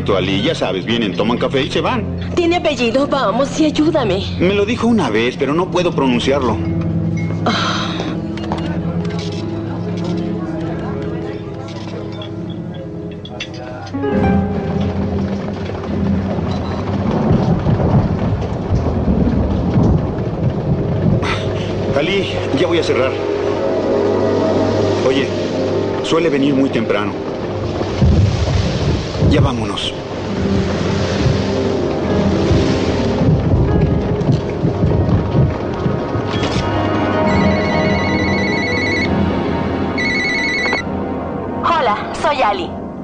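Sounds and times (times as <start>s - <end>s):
heavy rain: 0.0s - 41.9s
soft dramatic music: 0.0s - 43.0s
low rumble of thunder: 14.2s - 39.9s
telephone ringing electronic trill: 37.3s - 39.1s, 40.0s - 40.9s.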